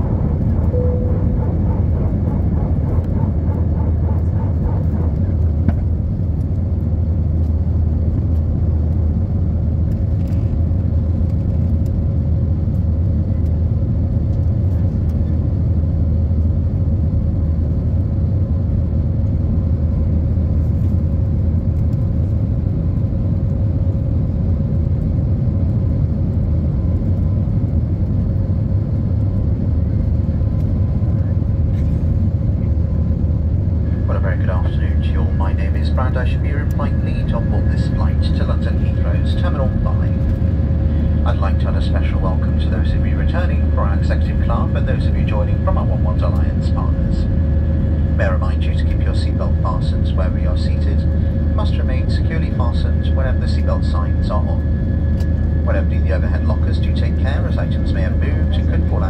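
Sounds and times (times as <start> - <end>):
faint steady hum: 0.0 - 15.4, 16.0 - 59.0
jet engines roaring in cabin: 0.0 - 59.0.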